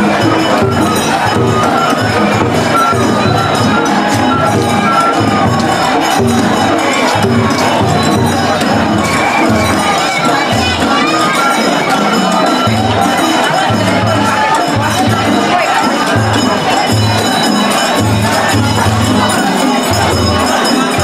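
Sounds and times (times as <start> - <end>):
crowd shouting and cheering: 0.0 - 21.0.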